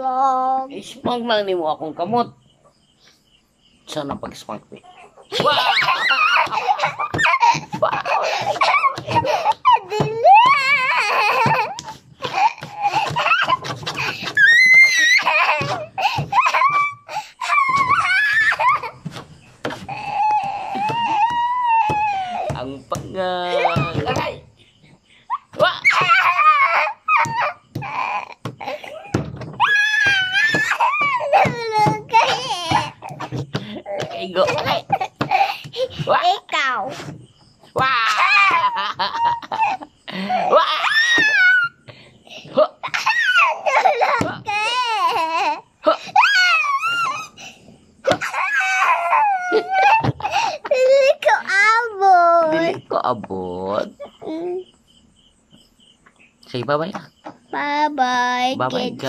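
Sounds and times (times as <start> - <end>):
boy squealing playfully: 5.2 - 19.0, 19.6 - 24.4, 25.3 - 36.9, 37.7 - 41.8, 42.4 - 47.4, 48.0 - 52.8.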